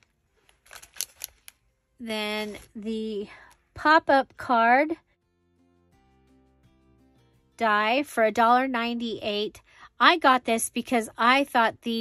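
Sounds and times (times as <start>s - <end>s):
plastic sleeves crinkling: 0.0s - 1.6s.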